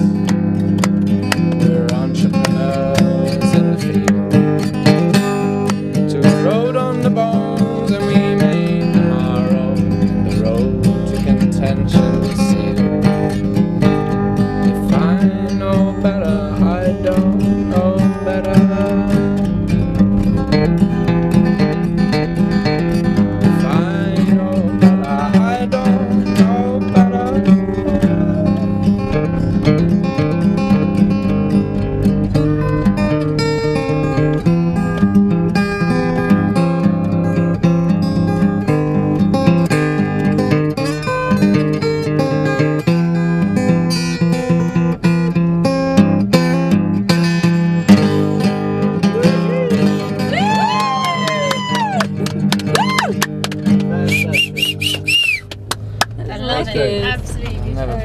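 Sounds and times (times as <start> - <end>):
acoustic guitar strummed and picked: 0.0 - 58.0.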